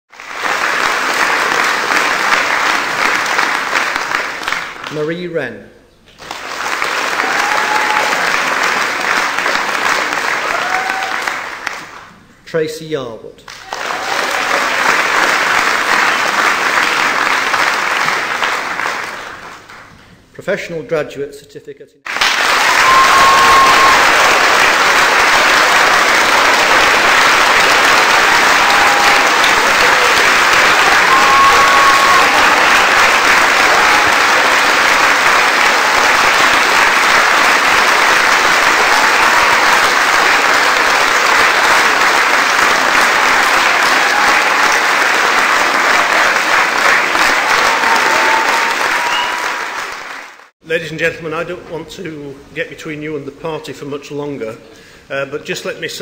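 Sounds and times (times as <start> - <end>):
audience applauding: 0.1 - 5.0, 6.2 - 12.1, 13.5 - 19.9, 22.1 - 50.5.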